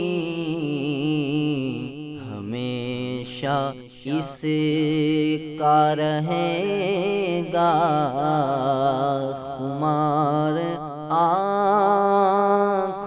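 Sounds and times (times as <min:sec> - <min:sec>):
man singing ornamented notes: 0:00.0 - 0:13.0.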